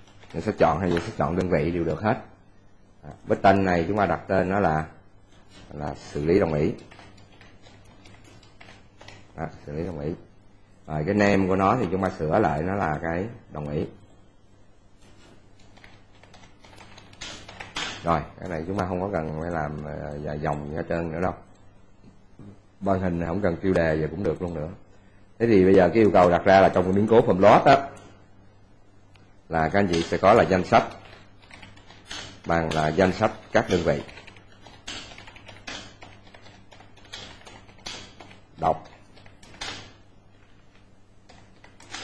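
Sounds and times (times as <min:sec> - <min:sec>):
keyboard typing: 0:00.0 - 0:02.0, 0:05.3 - 0:10.0, 0:15.0 - 0:20.8, 0:29.1 - 0:42.0.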